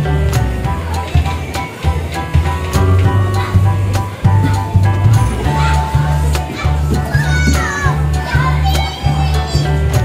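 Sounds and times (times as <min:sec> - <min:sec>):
loud background music with bass: 0:00.0 - 0:10.0
children's high-pitched voices: 0:05.4 - 0:10.0.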